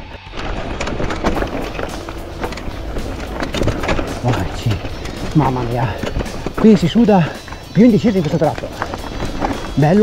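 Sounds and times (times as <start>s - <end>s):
bike rattling: 0.0s - 10.0s
tyres crunching over loose rock: 0.0s - 10.0s
sharp clicks and knocks: 0.3s - 10.0s.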